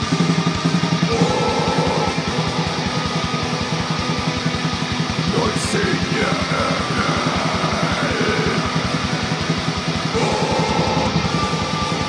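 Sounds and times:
black metal song: 0.0s - 12.0s.

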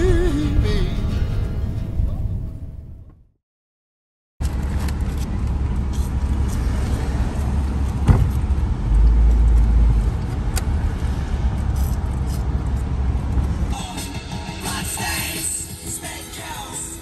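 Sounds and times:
car road and engine rumble: 0.0s - 3.2s, 4.4s - 17.0s.

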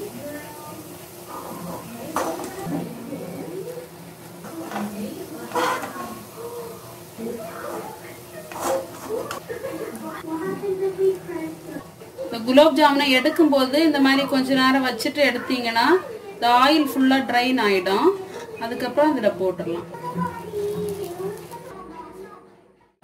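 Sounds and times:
quiet voices talking: 0.0s - 23.0s.

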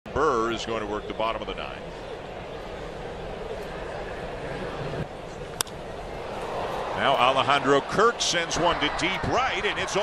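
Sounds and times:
crowd murmur: 1.6s - 10.0s
bat cracking ball: 5.5s - 5.8s.

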